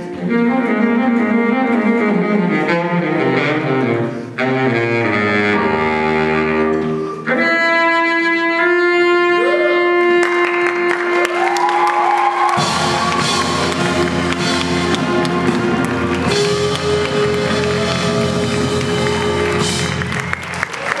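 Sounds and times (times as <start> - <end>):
jazz big band playing: 0.0 - 11.6, 12.3 - 21.0
audience applauding: 10.2 - 21.0
drums with cymbal crashes: 12.6 - 20.1.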